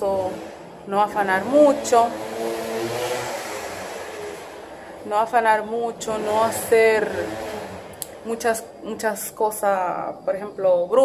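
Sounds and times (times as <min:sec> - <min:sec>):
steady rushing noise: 0:00.0 - 0:08.9.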